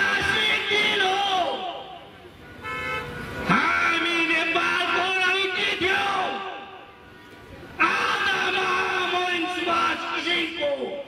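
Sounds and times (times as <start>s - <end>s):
man shouting into a microphone: 0.0s - 2.0s, 3.4s - 6.8s, 7.8s - 11.0s.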